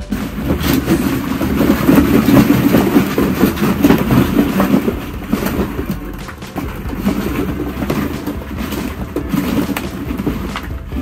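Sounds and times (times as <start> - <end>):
plastic balls rattling: 0.0 - 11.0.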